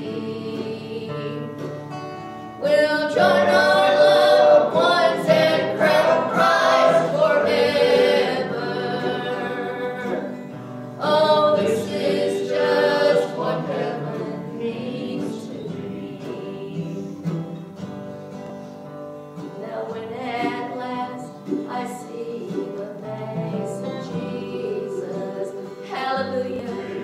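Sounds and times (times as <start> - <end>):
acoustic guitar: 0.0 - 27.0
woman and man singing gospel: 2.6 - 17.3, 19.6 - 27.0.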